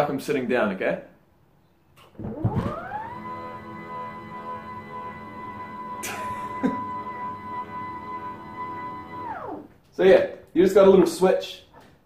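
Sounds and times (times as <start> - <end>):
desk lift motor whining: 2.1 - 9.9.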